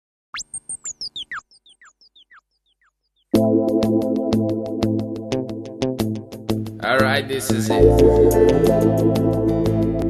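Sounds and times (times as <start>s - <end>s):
short falling chirps: 0.3s - 3.3s.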